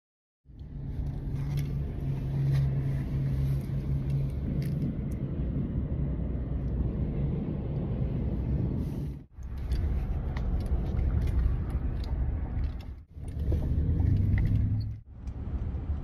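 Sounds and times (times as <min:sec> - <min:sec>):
engine hum: 0:00.4 - 0:16.0
vehicle rumble from inside cabin: 0:00.5 - 0:16.0.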